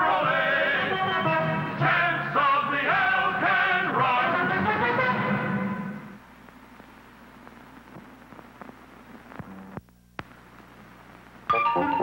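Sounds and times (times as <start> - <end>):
film soundtrack hiss and hum: 0.0 - 12.0
crackles and pops: 6.2 - 12.0.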